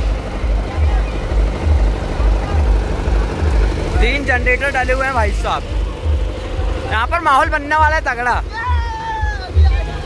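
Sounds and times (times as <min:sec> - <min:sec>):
crowd voices: 0:00.0 - 0:10.0
diesel generator rumbling: 0:00.0 - 0:10.0.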